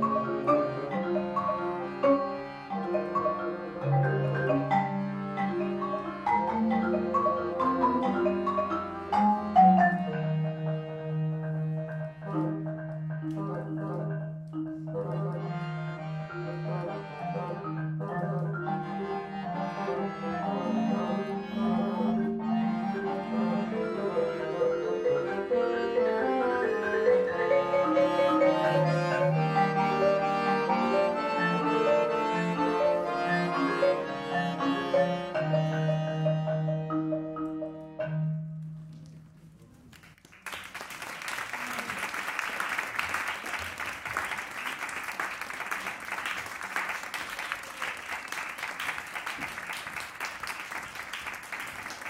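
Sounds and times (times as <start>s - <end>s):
bassoon: 0.0s - 14.2s, 14.8s - 38.5s
accordion: 0.0s - 38.5s
marimba notes: 0.0s - 39.2s.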